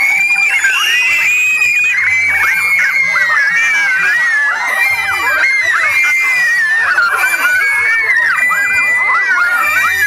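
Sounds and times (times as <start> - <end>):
children shrieking and shouting: 0.0 - 10.0.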